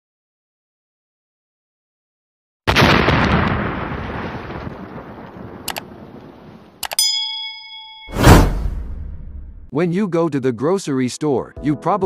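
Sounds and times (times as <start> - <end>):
explosion boom: 2.7 - 5.6, 8.1 - 9.7
bright bell-like ding: 6.8 - 8.8
rushing boom: 8.1 - 9.7.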